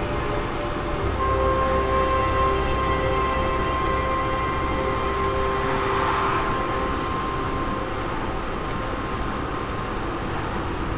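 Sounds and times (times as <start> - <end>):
car road and engine noise: 0.0 - 10.9
thin steady whine: 0.0 - 10.9.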